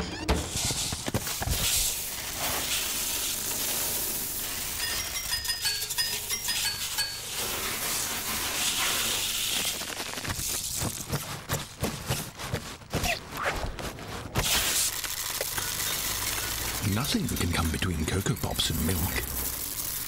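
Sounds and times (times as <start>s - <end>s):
foam fizzing: 0.5s - 5.2s, 7.2s - 10.9s, 14.4s - 20.0s.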